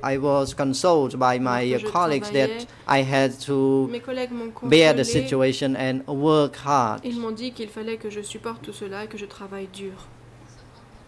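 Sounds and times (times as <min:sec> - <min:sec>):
steady low hum: 0:00.0 - 0:11.0
woman speaking: 0:01.7 - 0:02.7, 0:03.9 - 0:05.5, 0:07.0 - 0:10.2.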